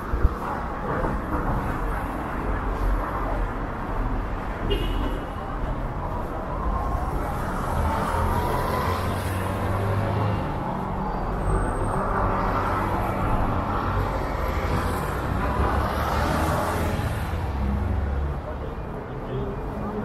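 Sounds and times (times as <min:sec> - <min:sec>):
cars and motorcycles driving: 0:00.0 - 0:20.0.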